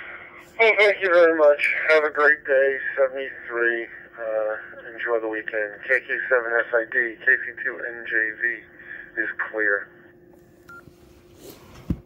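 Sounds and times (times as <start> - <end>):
faint radio hiss and hum: 0.0 - 12.0.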